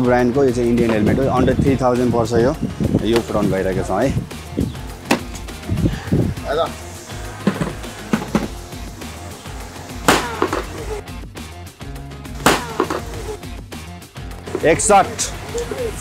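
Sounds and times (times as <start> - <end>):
background music: 0.0 - 16.0
hammer hitting helmet shell: 10.1 - 10.8, 12.4 - 13.2.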